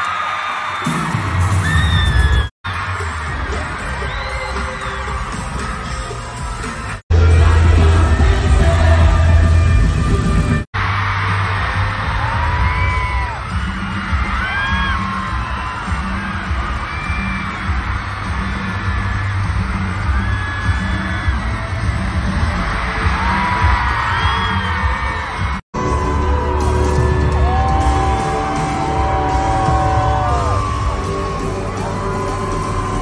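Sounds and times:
crowd screaming and cheering: 0:00.0 - 0:33.0
loud pop music with bass beat: 0:00.8 - 0:33.0.

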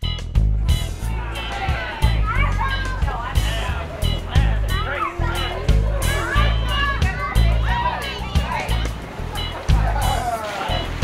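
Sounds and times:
upbeat music with heavy bass: 0:00.0 - 0:11.0.

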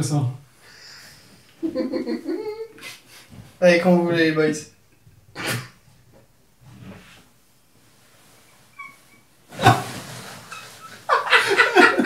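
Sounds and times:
faint high squeak: 0:08.4 - 0:09.8.

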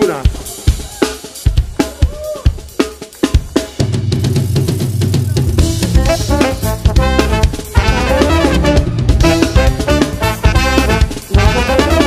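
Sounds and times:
jazz band playing: 0:00.0 - 0:12.0
drum kit hits: 0:03.4 - 0:12.0
heavy bass line: 0:05.3 - 0:12.0
horns: 0:05.6 - 0:12.0.

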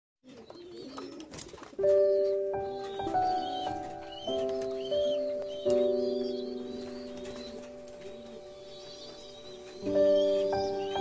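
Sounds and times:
pigeons cooing: 0:00.2 - 0:11.0
background music with held notes: 0:01.4 - 0:11.0.

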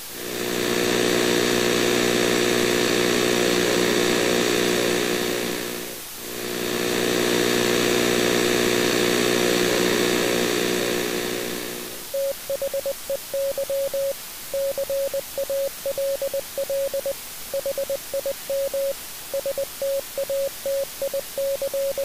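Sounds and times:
static hiss: 0:00.0 - 0:22.0
harsh electronic buzz: 0:00.2 - 0:22.0.

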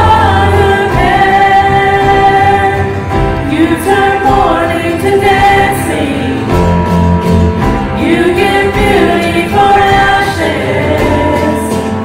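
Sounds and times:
band accompaniment: 0:00.0 - 0:12.0
choir singing in harmony: 0:00.0 - 0:12.0.

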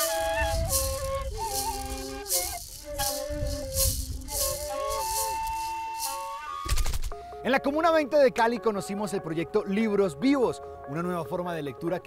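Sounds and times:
flute melody: 0:00.0 - 0:07.0
maraca shaken in steady beat: 0:00.0 - 0:07.2.

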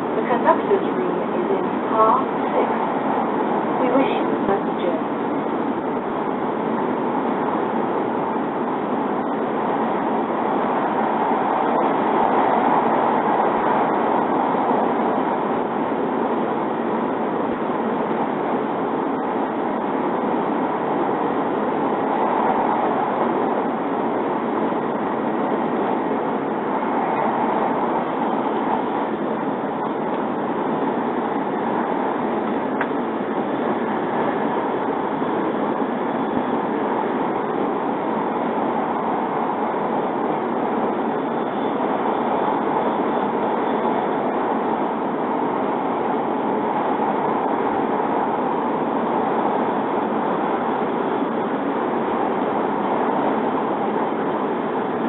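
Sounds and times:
train running noise: 0:00.0 - 0:55.0.

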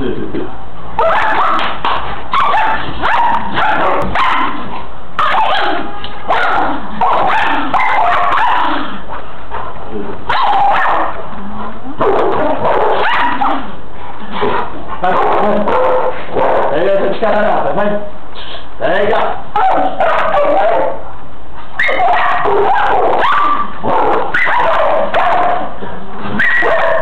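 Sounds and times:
dogs barking and yipping: 0:01.0 - 0:09.2, 0:10.3 - 0:11.2, 0:12.0 - 0:16.8, 0:19.6 - 0:21.0, 0:21.7 - 0:27.0.

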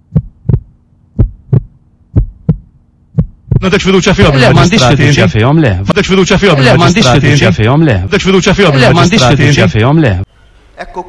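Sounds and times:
heartbeat thumps: 0:00.0 - 0:05.9
faint steady hum: 0:00.0 - 0:11.0.

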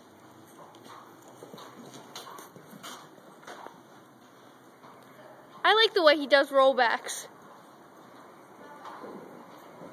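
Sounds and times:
horse hoofbeats on dirt: 0:00.0 - 0:09.9.

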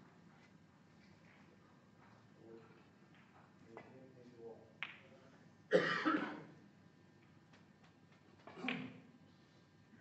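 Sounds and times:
person coughing: 0:05.7 - 0:06.5.

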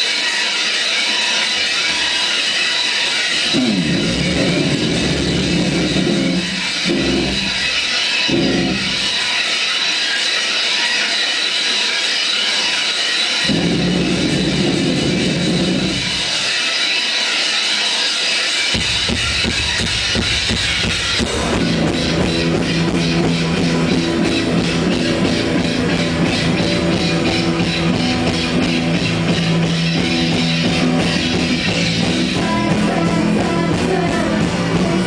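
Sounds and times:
drums: 0:00.0 - 0:35.0
hissy sustained guitar: 0:00.0 - 0:35.0
heavy low guitar chords: 0:03.4 - 0:09.2, 0:13.4 - 0:16.2, 0:18.8 - 0:35.0.

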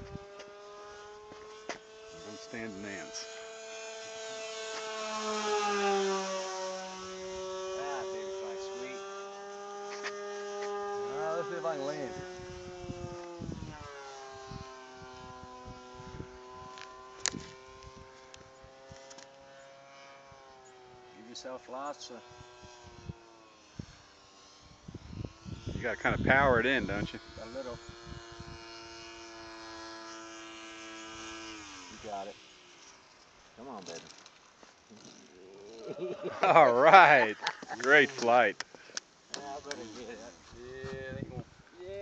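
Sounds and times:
model airplane motor droning: 0:00.0 - 0:42.0.

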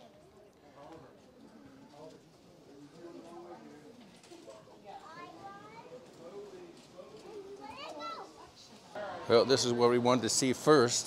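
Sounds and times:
background chatter: 0:00.0 - 0:11.0
children's voices: 0:05.0 - 0:06.0, 0:07.5 - 0:08.6.

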